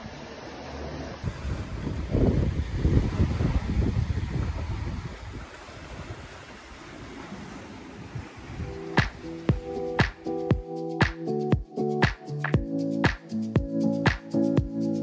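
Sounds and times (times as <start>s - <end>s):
wind buffeting microphone: 1.2s - 10.4s.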